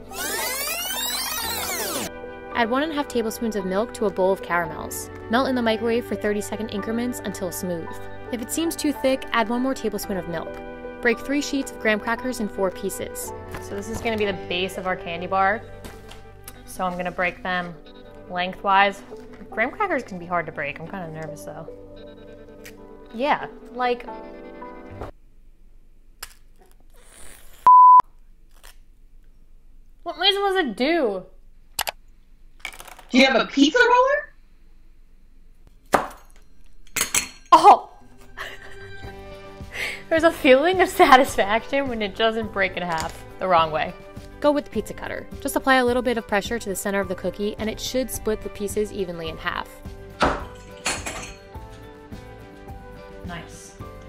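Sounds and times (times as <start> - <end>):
background music: 0.0 - 25.2, 36.4 - 54.0
censor bleep: 27.6 - 28.0
crackers crunching under a cutter: 28.4 - 29.3.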